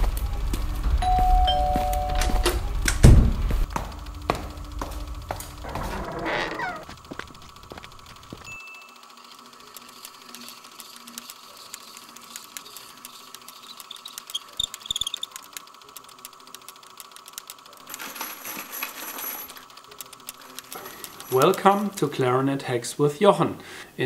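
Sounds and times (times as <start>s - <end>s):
small metallic clicks and ticks: 9.0s - 18.0s, 19.5s - 21.8s.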